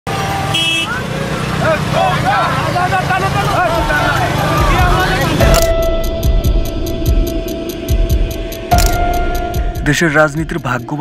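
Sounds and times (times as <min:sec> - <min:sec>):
low traffic rumble: 0:00.1 - 0:10.7
many voices calling: 0:00.8 - 0:05.6
steady musical tone with ticking: 0:03.6 - 0:11.0.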